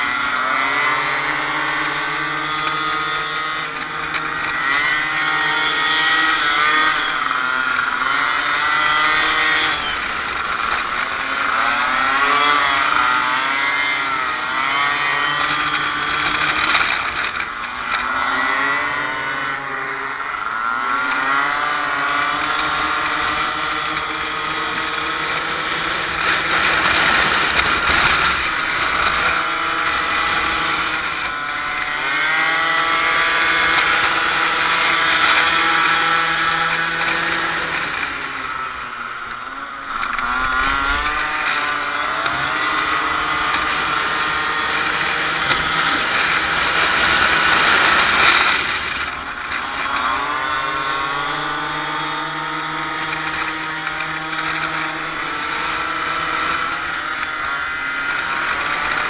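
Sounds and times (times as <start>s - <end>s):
racing scooter engines: 0.0s - 59.0s.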